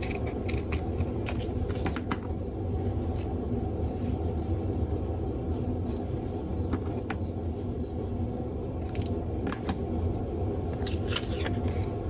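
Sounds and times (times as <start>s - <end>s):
scissors snipping paper: 0.0s - 1.5s
low background rumble: 0.0s - 12.0s.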